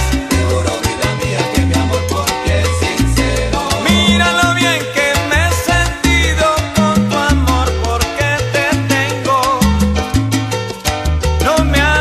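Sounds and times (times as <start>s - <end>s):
salsa music: 0.0s - 12.0s.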